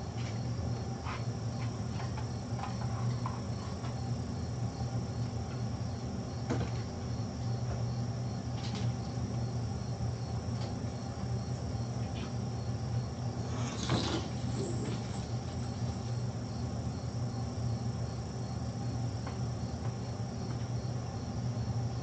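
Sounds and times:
low electrical hum: 0.0 - 22.0.

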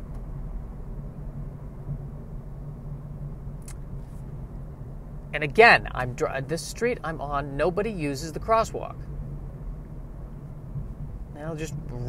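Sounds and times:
car engine and road noise: 0.0 - 12.0
constant low hum: 0.0 - 12.0.

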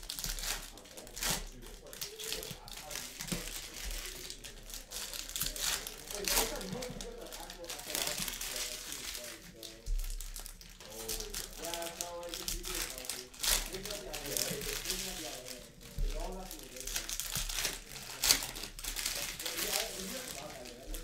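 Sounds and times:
foil wrappers crinkling: 0.0 - 21.0.

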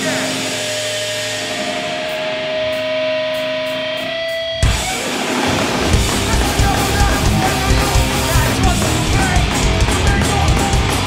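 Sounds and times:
amp noise: 0.0 - 11.0
electric guitar feedback: 0.0 - 11.0.

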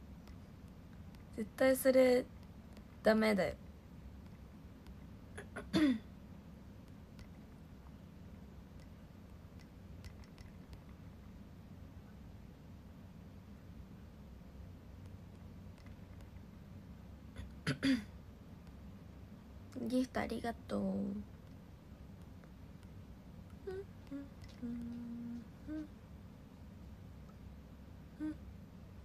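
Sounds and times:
woman clearing her throat: 5.4 - 6.1, 17.4 - 18.1.

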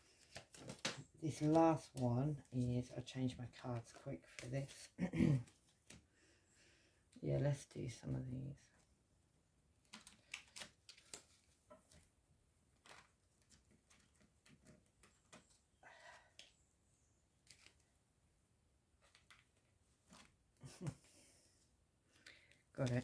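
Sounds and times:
cards being shuffled: 0.1 - 2.9, 9.8 - 12.1, 12.7 - 15.6, 17.4 - 17.9, 19.0 - 21.0, 22.1 - 23.0.

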